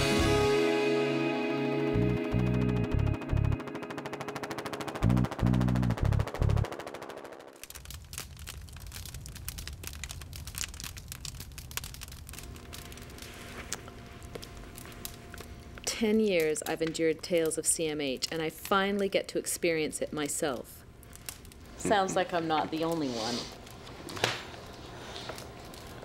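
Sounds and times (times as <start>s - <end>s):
music with fluttering pulse: 0.0s - 7.6s
wood fire crackling: 2.0s - 26.0s.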